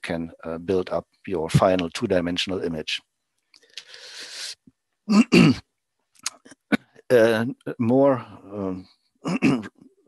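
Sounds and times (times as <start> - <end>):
man clearing his throat: 5.1 - 5.6, 9.3 - 9.7.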